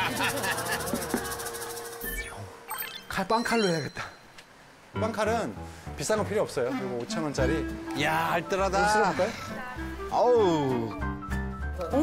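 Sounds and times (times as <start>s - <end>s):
people chuckling and laughing: 0.0s - 2.0s.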